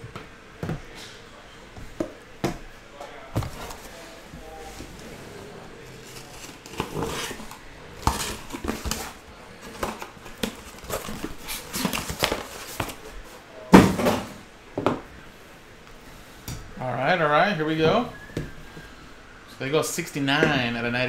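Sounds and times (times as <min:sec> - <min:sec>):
cardboard boxes rustling and scraping: 0:03.3 - 0:13.4.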